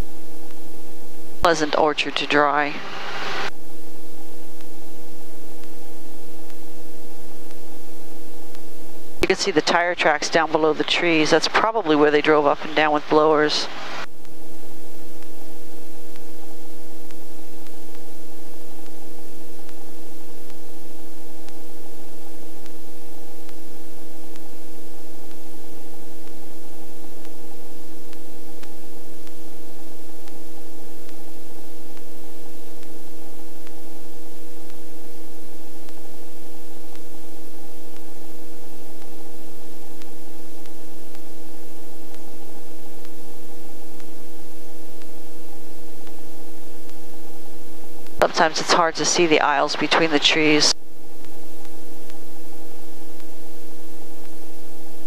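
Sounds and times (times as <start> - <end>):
helicopter cockpit hiss and whine: 1.4 - 7.4, 9.2 - 22.5, 34.8 - 53.1.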